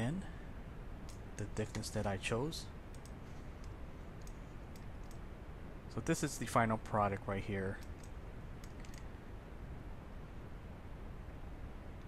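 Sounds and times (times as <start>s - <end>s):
low steady hum: 0.0s - 12.0s
computer mouse clicks: 2.9s - 5.2s, 7.8s - 9.1s.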